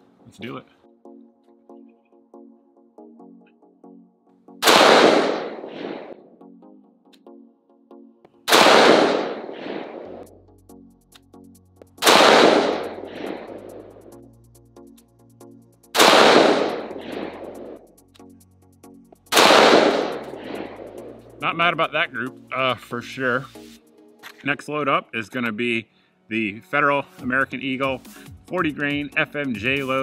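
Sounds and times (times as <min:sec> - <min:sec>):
gunshot: 0:04.6 - 0:06.2, 0:08.5 - 0:10.3, 0:12.0 - 0:13.7, 0:16.0 - 0:17.6, 0:19.3 - 0:21.0
rolling echo: 0:04.6 - 0:06.3, 0:08.5 - 0:10.3, 0:12.0 - 0:13.8, 0:16.0 - 0:17.8, 0:19.4 - 0:21.1.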